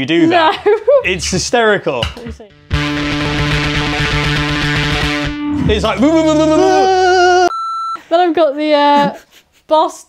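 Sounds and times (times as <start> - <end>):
distorted electric bass note: 2.4 - 6.8.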